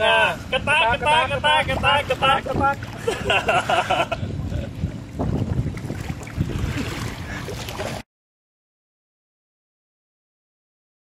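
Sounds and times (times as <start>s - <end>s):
wind buffeting microphone: 0.0s - 8.0s.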